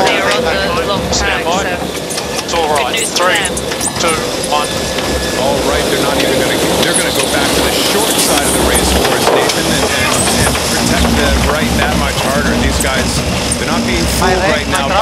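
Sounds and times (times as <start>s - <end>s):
crew voices calling: 0.0s - 15.0s
rushing wind and water: 0.0s - 15.0s
steady hum: 0.0s - 15.0s.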